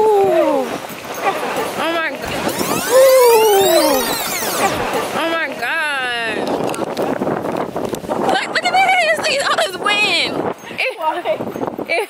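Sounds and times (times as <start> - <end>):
woman making long falling calls: 2.4 - 4.7.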